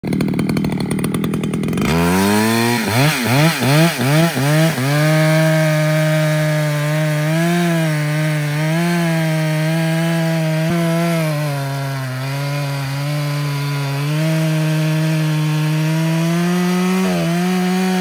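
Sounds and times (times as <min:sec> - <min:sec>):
chainsaw cutting log: 0:00.0 - 0:18.0.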